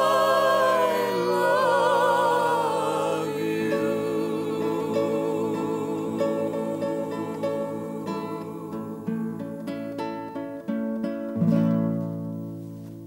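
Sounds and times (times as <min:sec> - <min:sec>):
acoustic guitar picked melody: 0:00.0 - 0:13.0.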